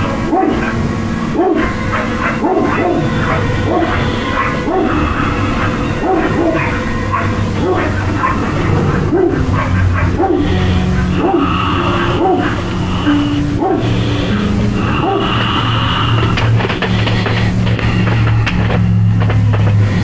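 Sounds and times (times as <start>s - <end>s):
music: 0.0s - 20.0s
dog barking: 0.2s - 15.7s.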